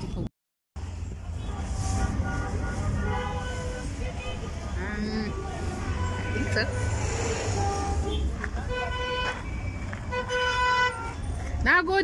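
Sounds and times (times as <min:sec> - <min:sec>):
street traffic rumble: 0:00.0 - 0:12.0
vehicle horns honking: 0:01.3 - 0:11.3.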